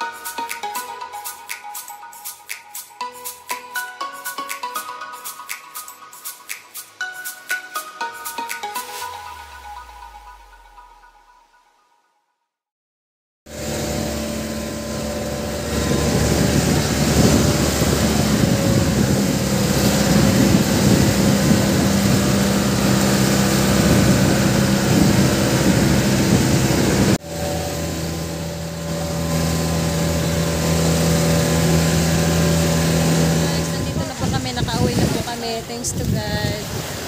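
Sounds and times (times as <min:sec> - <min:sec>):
boat engine running: 0:13.5 - 0:37.0
water rushing past hull: 0:13.5 - 0:37.0.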